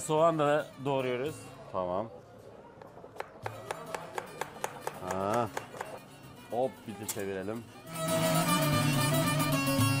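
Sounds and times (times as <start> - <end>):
knife chopping onion on board: 3.2 - 6.0
background music with plucked strings: 3.5 - 10.0.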